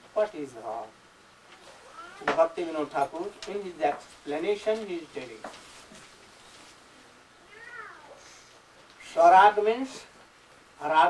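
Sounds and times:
faint high-pitched cry: 0:01.5 - 0:02.5, 0:07.4 - 0:08.6.

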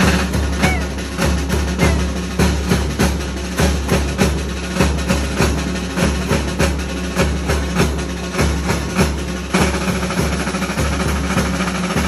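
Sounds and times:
drum and cymbals fast beat: 0:00.0 - 0:12.0.

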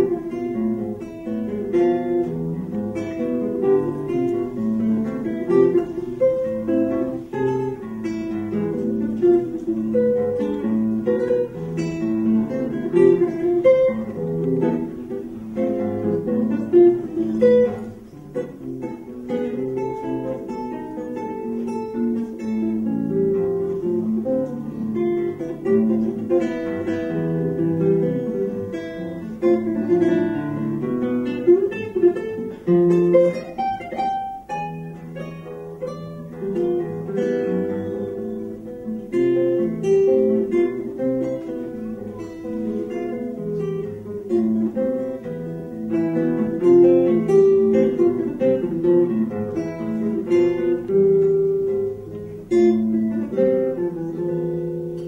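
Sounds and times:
fingerpicked classical guitar: 0:00.0 - 0:55.0.

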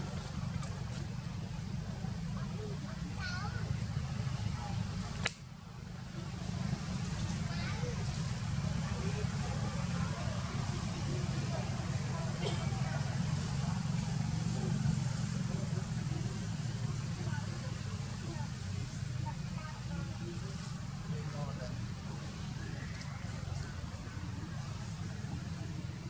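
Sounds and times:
faint indistinct background sounds: 0:00.0 - 0:26.0.

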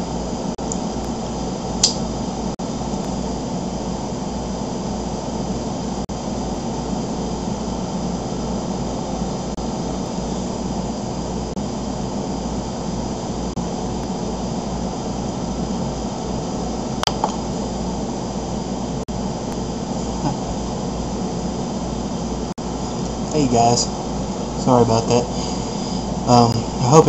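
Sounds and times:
steady background hum and hiss: 0:00.0 - 0:27.0.

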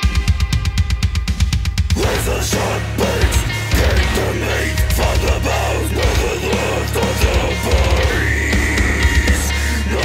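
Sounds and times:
fast bass drum and cymbal hits: 0:00.0 - 0:10.0.

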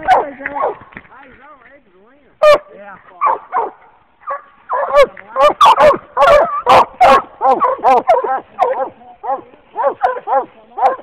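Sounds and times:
dogs barking: 0:00.0 - 0:00.9, 0:02.4 - 0:11.0.

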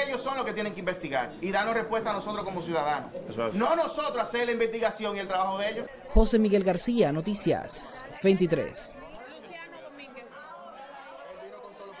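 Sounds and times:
faint chatter of people: 0:00.0 - 0:12.0.

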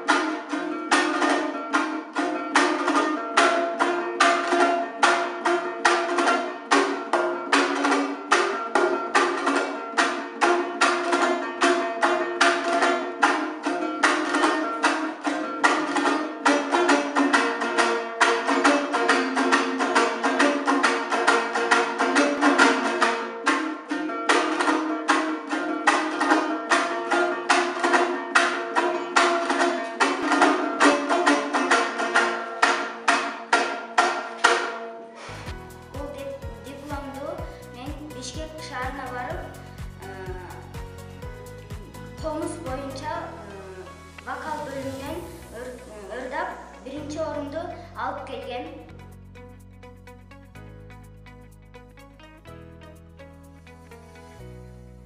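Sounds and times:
fast strummed string instrument: 0:00.0 - 0:54.1.

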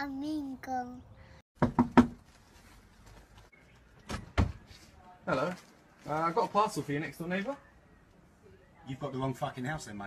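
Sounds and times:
knocks on a door: 0:01.6 - 0:02.2.

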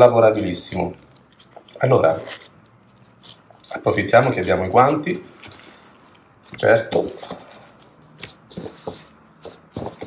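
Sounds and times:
hands kneading dough: 0:00.0 - 0:10.0.

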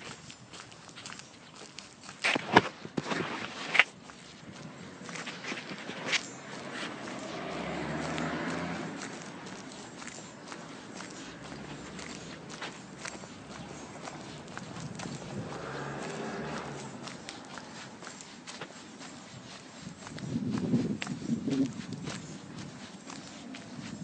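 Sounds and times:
footsteps on paved street: 0:00.0 - 0:24.0.

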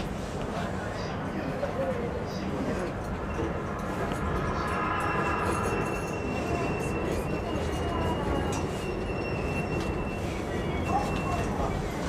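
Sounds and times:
low rolling rumble with clicks: 0:01.6 - 0:10.1
steady high whine: 0:02.7 - 0:08.4
train wheels squealing: 0:03.0 - 0:12.0.

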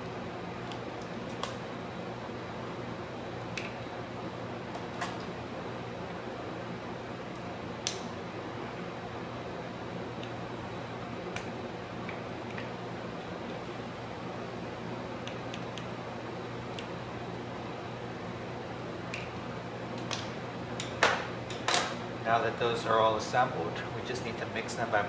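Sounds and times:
room ventilation hum: 0:00.0 - 0:25.0.

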